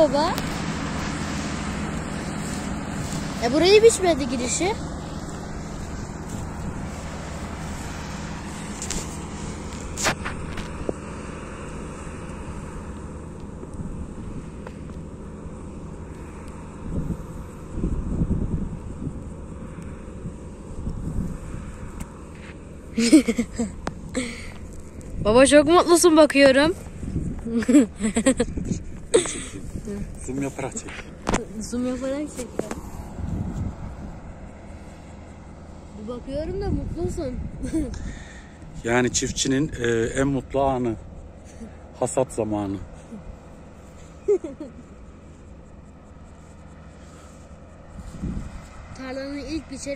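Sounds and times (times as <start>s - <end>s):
combine harvester engine droning: 0.0s - 49.9s.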